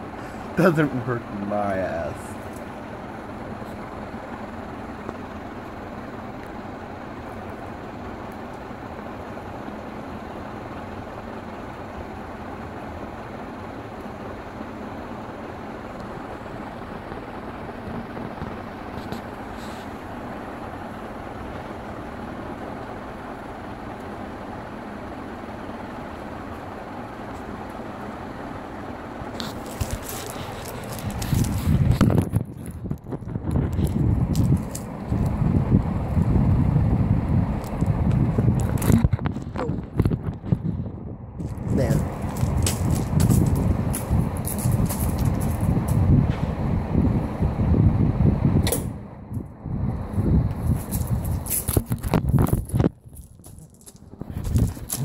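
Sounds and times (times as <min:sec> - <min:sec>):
ceiling fan whirring: 0:00.0 - 0:55.0.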